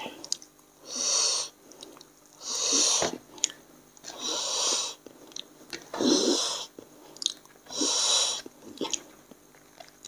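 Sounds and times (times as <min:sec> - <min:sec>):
heavy hissing breaths: 0:00.8 - 0:01.8, 0:02.4 - 0:03.2, 0:04.1 - 0:05.0, 0:06.0 - 0:06.8, 0:07.7 - 0:08.5.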